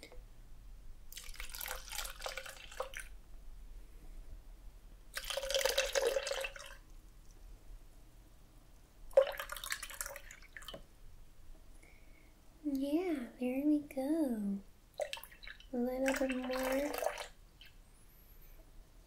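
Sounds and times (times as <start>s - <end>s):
juice pouring into plastic cup: 1.1s - 3.0s, 5.1s - 6.8s.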